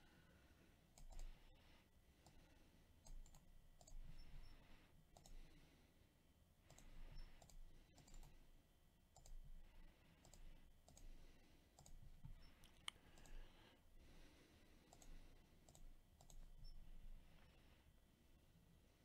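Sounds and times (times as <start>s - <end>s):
computer mouse clicks: 0.9s - 1.5s, 2.2s - 5.5s, 6.6s - 8.4s, 9.1s - 9.5s, 10.2s - 13.5s, 14.8s - 16.8s.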